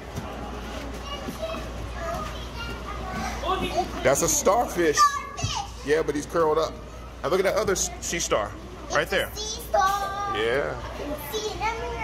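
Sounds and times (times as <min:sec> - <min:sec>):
children chattering: 0:00.5 - 0:05.9, 0:08.9 - 0:12.0.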